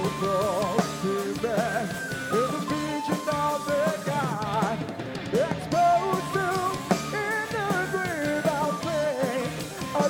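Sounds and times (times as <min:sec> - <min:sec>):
bass guitar: 0:00.0 - 0:10.0
drums: 0:00.0 - 0:10.0
keyboard: 0:00.0 - 0:10.0.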